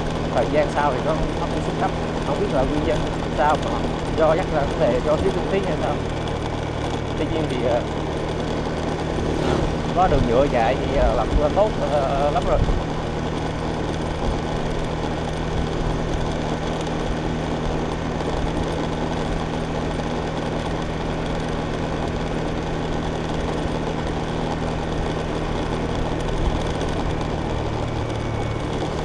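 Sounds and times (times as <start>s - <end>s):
road noise: 0.0s - 29.0s
small motorbike engine droning: 0.0s - 29.0s.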